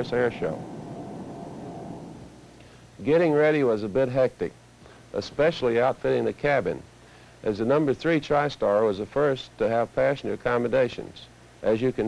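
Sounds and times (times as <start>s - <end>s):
jet engines rumbling in flight: 0.0s - 3.0s.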